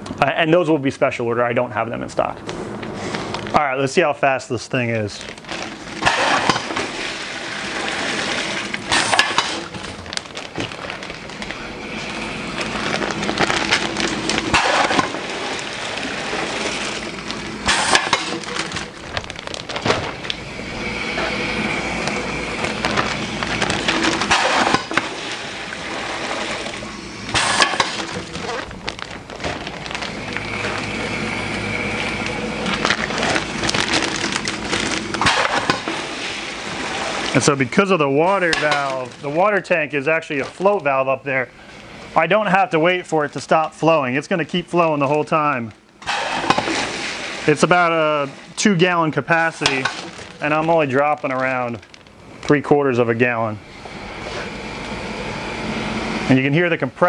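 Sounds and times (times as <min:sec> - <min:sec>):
plastic bags crinkling: 0:02.8 - 0:03.6, 0:04.9 - 0:41.0, 0:46.2 - 0:52.7
loud clattering bursts: 0:05.4 - 0:20.4, 0:21.1 - 0:31.0, 0:32.2 - 0:37.4, 0:46.0 - 0:47.6
pneumatic cylinders snapping valves: 0:06.0 - 0:10.0, 0:13.6 - 0:18.9, 0:21.1 - 0:28.8, 0:29.4 - 0:37.4, 0:46.0 - 0:47.3.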